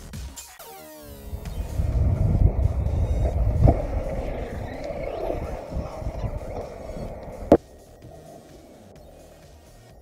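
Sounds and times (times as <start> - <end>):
wind buffeting microphone: 1.1 - 10.0.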